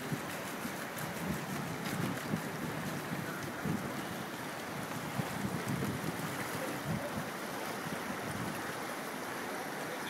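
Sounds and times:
wind buffeting microphone: 0:00.0 - 0:09.2
rushing whitewater: 0:00.0 - 0:10.0.

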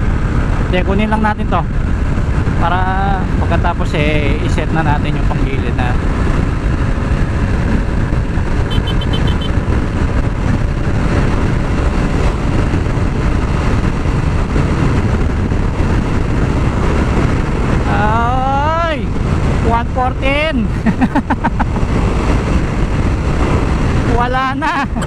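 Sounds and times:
wind rushing over microphone: 0:00.0 - 0:25.0
scooter engine drone: 0:05.1 - 0:25.0.

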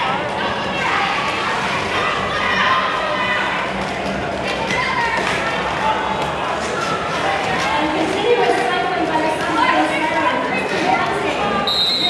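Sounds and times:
hubbub of many voices: 0:00.0 - 0:12.0.

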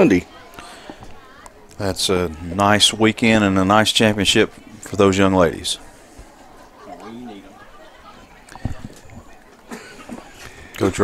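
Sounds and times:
faint chatter of people: 0:00.0 - 0:11.0.

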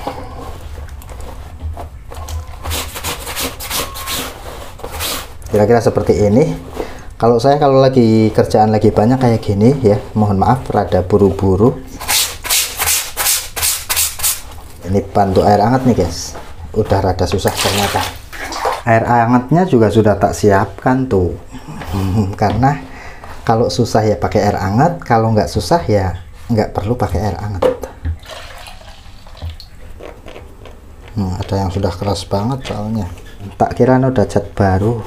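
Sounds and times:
brush scrubbing wet fabric: 0:02.6 - 0:18.8.

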